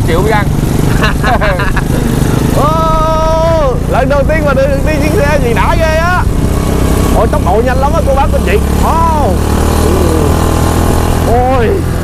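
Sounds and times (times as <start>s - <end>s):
small engine droning: 0.0s - 12.0s.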